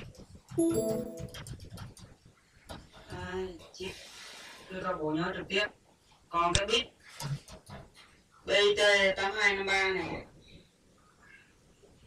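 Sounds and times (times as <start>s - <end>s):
keyboard typing clicks: 0.6s - 1.4s
short pitched tone: 0.6s - 1.4s.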